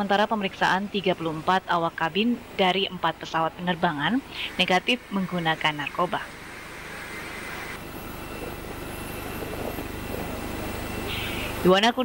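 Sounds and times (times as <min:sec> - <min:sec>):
jet engine rushing and whining: 0:04.2 - 0:12.0.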